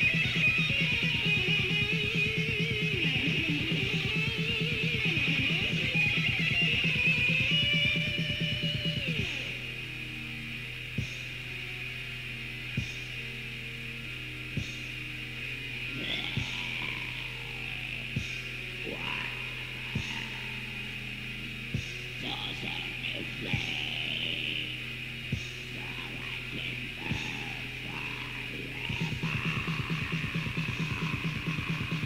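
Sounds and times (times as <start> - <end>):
low hum: 0.0 - 32.0
tape hiss: 0.0 - 32.0.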